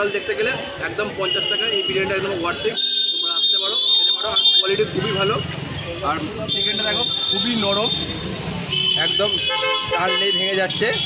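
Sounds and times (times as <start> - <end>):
vehicle horn: 8.7 - 11.0
people talking: 9.0 - 11.0.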